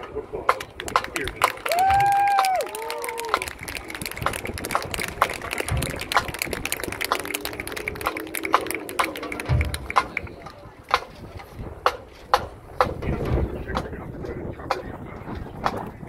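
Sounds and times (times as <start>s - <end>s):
crowd chatter: 0.0s - 16.0s
sharp claps: 0.5s - 11.1s
person shouting a long call: 1.7s - 3.4s.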